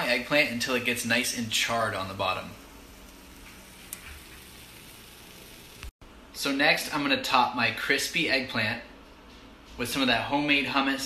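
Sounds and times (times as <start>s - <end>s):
eggplant frying in a pan: 0.0s - 5.9s.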